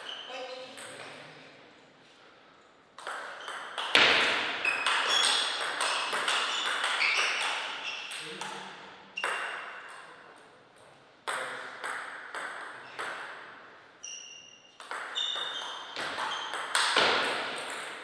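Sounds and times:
loud table tennis hit: 3.0s - 8.6s, 9.2s - 10.1s, 11.2s - 13.6s, 14.8s - 18.0s.

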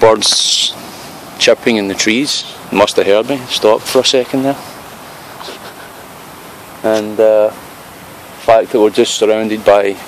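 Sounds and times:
man talking: 0.0s - 0.8s, 1.4s - 4.7s, 6.8s - 7.6s, 8.4s - 10.0s
outdoor background hiss: 0.0s - 10.0s.

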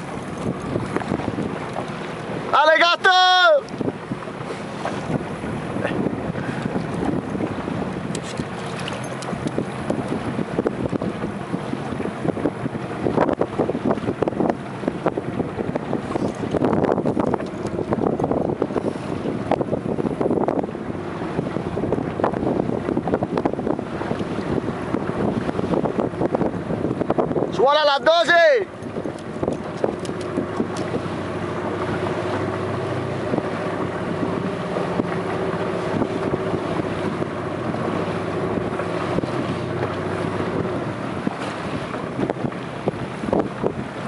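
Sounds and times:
sea water splashing against hull: 0.0s - 44.0s
wind buffeting microphone: 0.0s - 44.0s.

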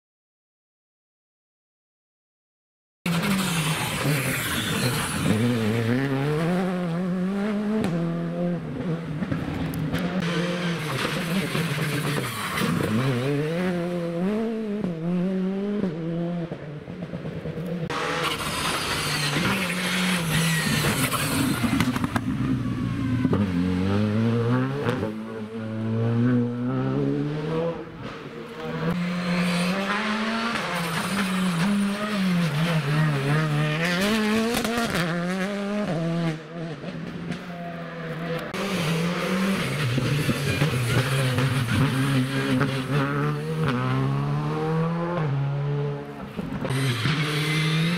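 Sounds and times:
rally car engines revving: 3.1s - 47.9s.

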